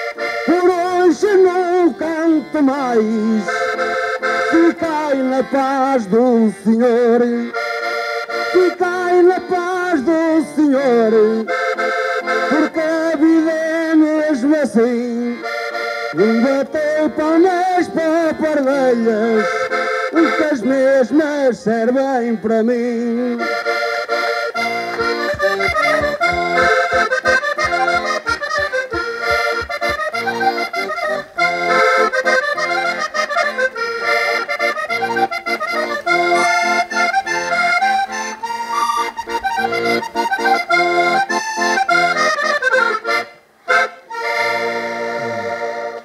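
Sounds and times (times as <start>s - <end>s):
accordion folk tune: 0.0s - 46.0s.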